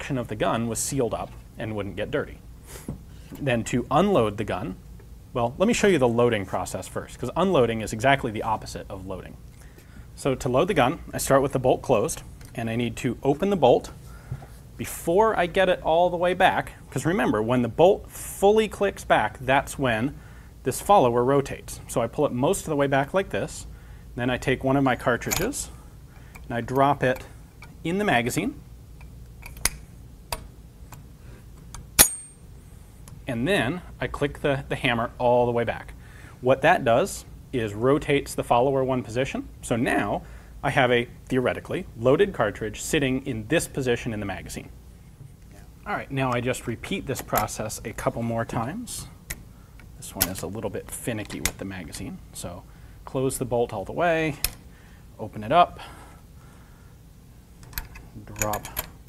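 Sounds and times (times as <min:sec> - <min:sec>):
small metallic clicks: 0:29.0 - 0:32.4, 0:57.6 - 0:59.0.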